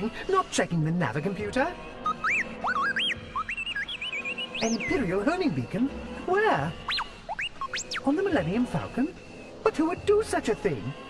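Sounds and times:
robot beeping and whistling: 0:02.0 - 0:05.3, 0:06.9 - 0:08.2.

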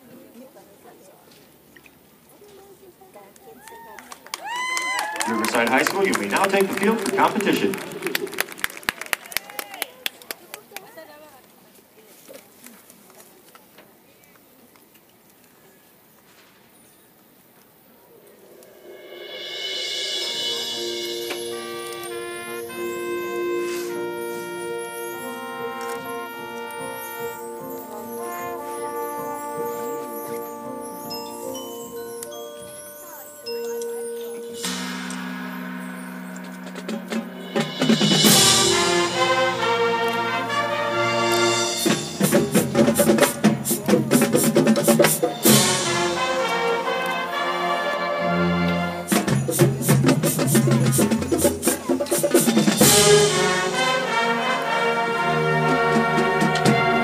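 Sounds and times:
people clapping: 0:03.3 - 0:11.6
percussion hits: 0:05.2 - 0:09.3, 0:18.4 - 0:57.0
marching band playing: 0:05.2 - 0:09.4, 0:18.4 - 0:57.0.

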